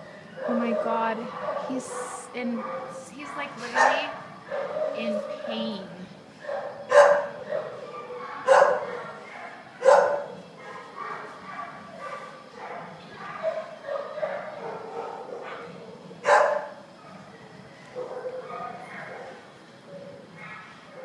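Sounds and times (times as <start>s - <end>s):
dog barking: 0.4s - 3.0s, 3.6s - 5.6s, 6.4s - 17.3s, 18.0s - 19.4s, 20.4s - 21.0s.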